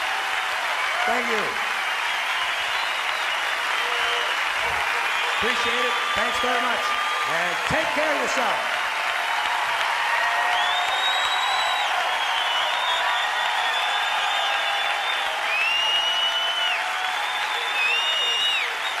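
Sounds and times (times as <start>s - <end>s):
audience applauding and cheering: 0.0s - 19.0s
high whistles: 2.1s - 7.5s, 10.4s - 19.0s.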